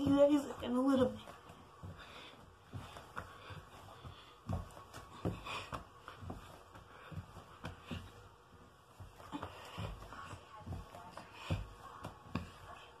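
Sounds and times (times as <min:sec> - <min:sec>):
socked feet thumping on wood floor: 0:00.0 - 0:13.0.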